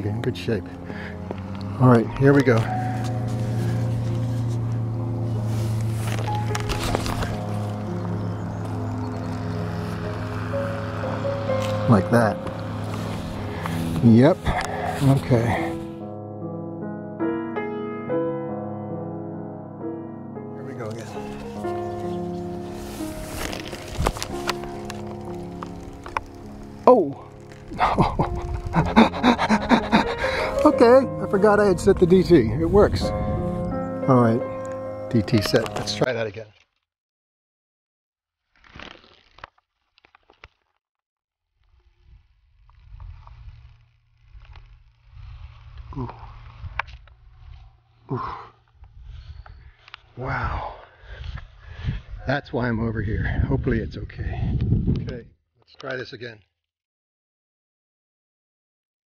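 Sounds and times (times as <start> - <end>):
solo piano music: 2.6 - 14.0, 15.7 - 27.4, 28.4 - 36.0
short rustle: 21.0 - 27.7
person laughing: 27.7 - 30.8
wind buffeting microphone: 31.5 - 33.9, 51.0 - 55.3.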